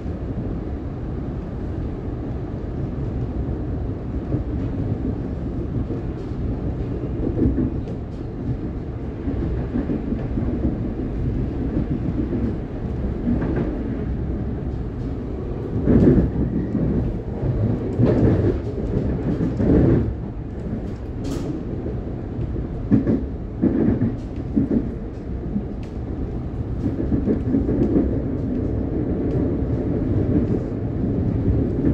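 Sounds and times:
train wheels rumbling on rail: 0.0 - 31.9.

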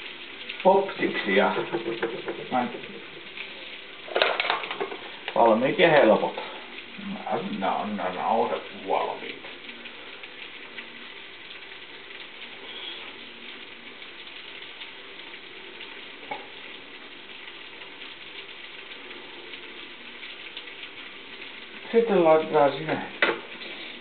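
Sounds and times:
food sizzling in a frying pan: 0.0 - 24.0.

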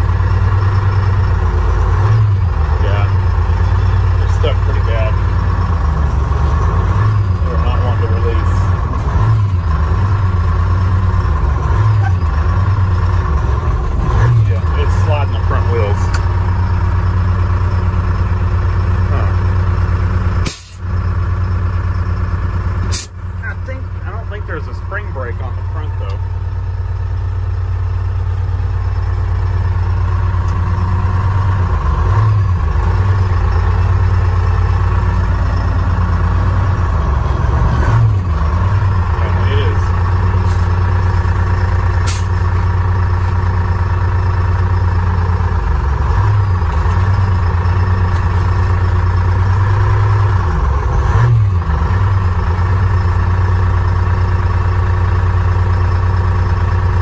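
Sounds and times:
diesel engine running: 0.0 - 57.0.

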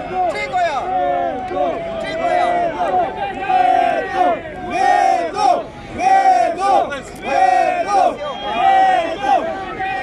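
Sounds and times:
crowd chanting in rhythm: 1.5 - 9.7.

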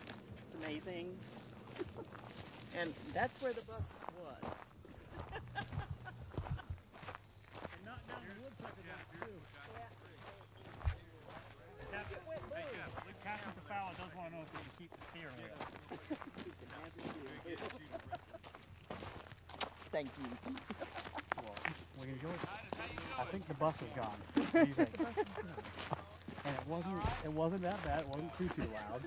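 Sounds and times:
footsteps on gravel: 0.0 - 29.0.

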